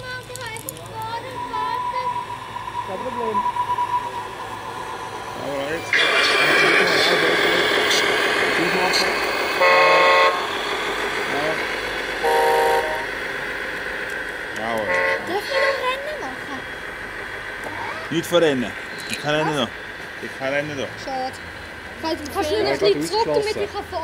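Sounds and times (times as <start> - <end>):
steady engine sound: 0.0 - 24.0
model truck horn toots: 9.6 - 10.4, 12.2 - 13.0, 14.9 - 15.8.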